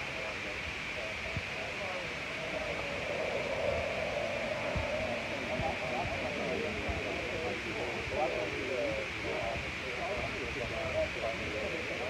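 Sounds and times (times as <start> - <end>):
indistinct background voices: 0.0 - 12.0
steady hiss: 0.0 - 12.0.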